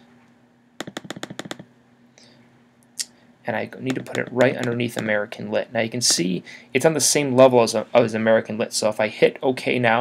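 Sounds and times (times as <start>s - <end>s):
computer mouse clicks: 0.8s - 1.7s.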